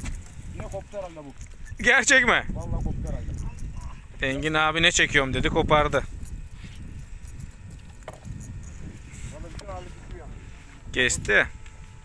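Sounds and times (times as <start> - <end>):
wind and water rumble: 0.0 - 12.0.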